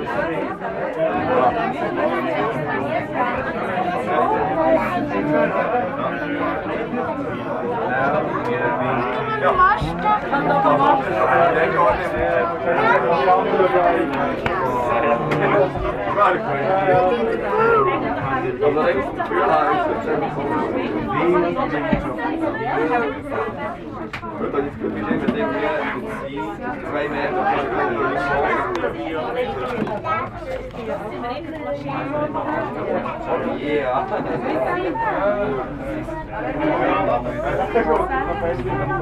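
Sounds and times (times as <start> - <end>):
people chattering: 0.0 - 39.0.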